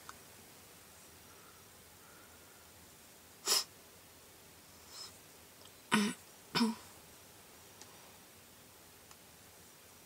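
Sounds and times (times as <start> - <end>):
person clearing throat: 5.9 - 6.9.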